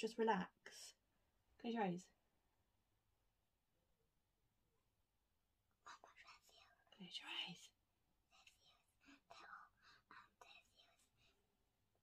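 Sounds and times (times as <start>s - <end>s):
faint whispering: 5.8s - 11.5s.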